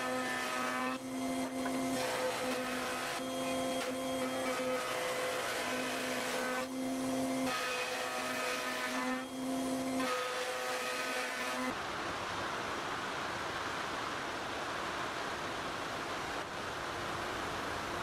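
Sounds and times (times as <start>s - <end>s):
router motor whine: 0.9s - 11.7s.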